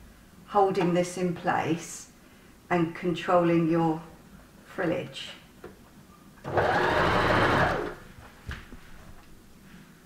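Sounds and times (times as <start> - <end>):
sewing machine stitching: 6.4 - 8.0.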